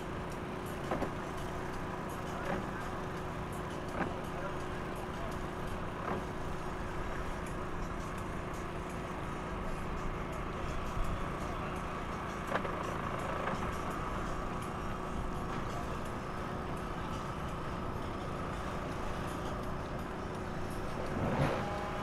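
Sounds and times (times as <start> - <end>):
engine hum: 0.0 - 22.0
faint voices: 0.2 - 22.0.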